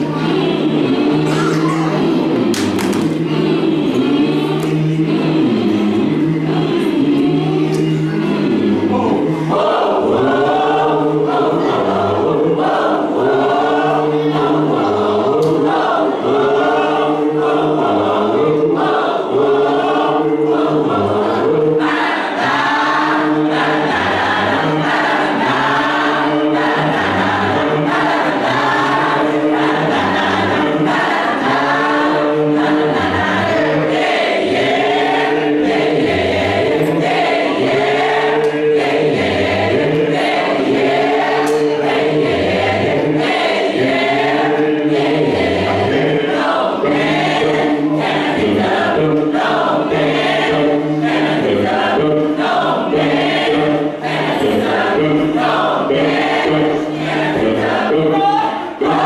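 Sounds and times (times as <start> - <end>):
gospel choir singing in harmony: 0.0 - 59.0.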